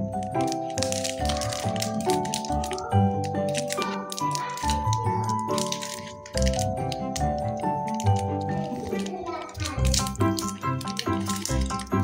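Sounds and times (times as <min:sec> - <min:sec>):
plastic wrapper crinkling: 0:00.0 - 0:12.0.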